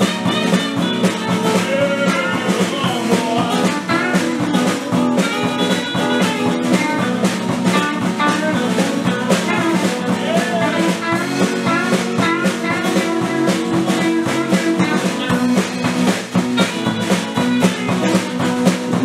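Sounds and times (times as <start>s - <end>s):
acoustic guitar: 0.0s - 19.0s
country rockabilly band playing: 0.0s - 19.0s
electric guitar: 0.0s - 19.0s
steady drum beat: 0.0s - 19.0s.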